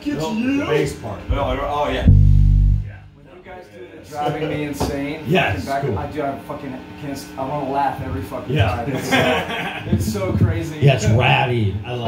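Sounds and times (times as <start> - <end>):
low bass guitar note: 1.3 - 3.2.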